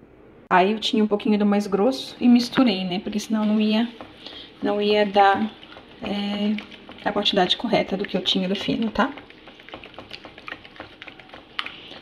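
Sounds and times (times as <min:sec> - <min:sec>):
whisk beating eggs in bowl: 0:02.4 - 0:12.0.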